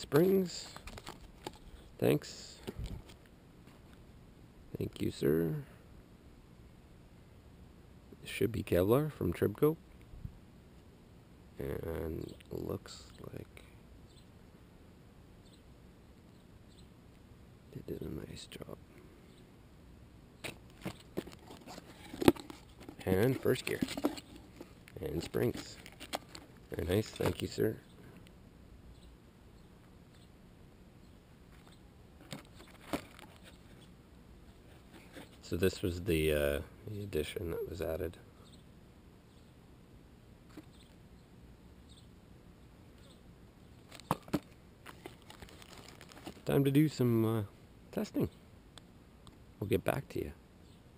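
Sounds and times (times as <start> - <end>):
cardboard packaging crackling: 0.7 - 1.6, 20.5 - 26.6, 43.9 - 46.5.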